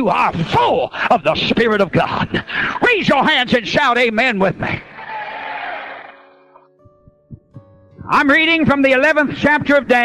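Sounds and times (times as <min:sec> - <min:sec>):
crowd shouting amen: 0:05.0 - 0:06.2
crowd applauding: 0:05.0 - 0:06.3.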